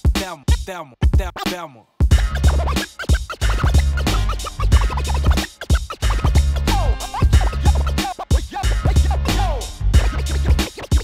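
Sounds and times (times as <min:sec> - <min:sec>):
hip hop beat with heavy bass: 0:00.0 - 0:11.0
turntable scratching: 0:00.0 - 0:11.0.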